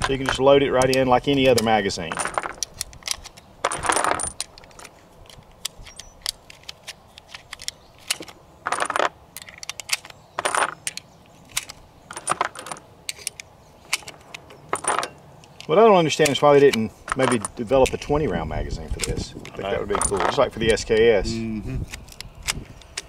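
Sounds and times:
sharp metallic clicks: 0.0s - 21.0s
clinking rattles of cartridges: 0.0s - 21.1s, 21.9s - 23.0s.

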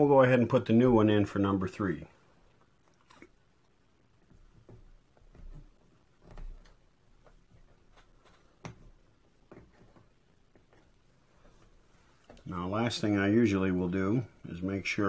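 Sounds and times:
rubber grommet rubbing: 4.2s - 12.6s.

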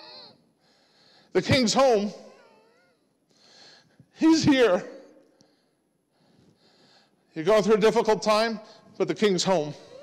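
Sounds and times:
man speaking: 1.3s - 2.3s, 4.1s - 5.2s, 7.4s - 10.0s
soft breath in: 5.4s - 7.3s.

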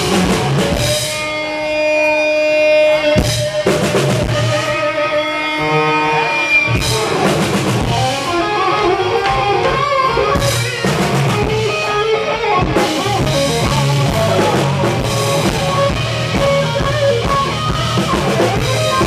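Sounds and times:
bass guitar: 0.0s - 19.0s
drum kit: 0.0s - 19.0s
electric guitar lines: 0.0s - 19.0s.

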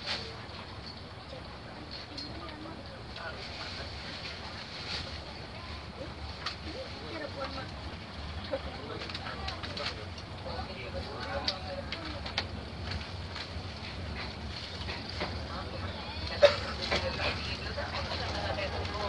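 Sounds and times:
faint passenger voices: 0.0s - 19.0s
train coach rumbling: 0.0s - 19.0s.

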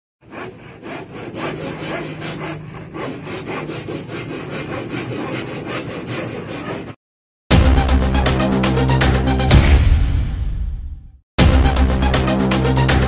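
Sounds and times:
handsaw cutting plywood: 0.2s - 7.0s.

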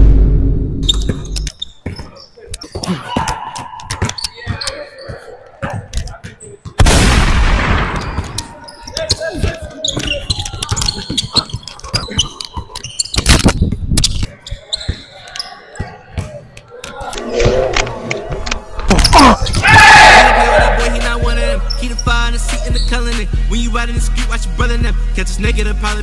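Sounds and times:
players shouting: 16.7s - 22.8s.

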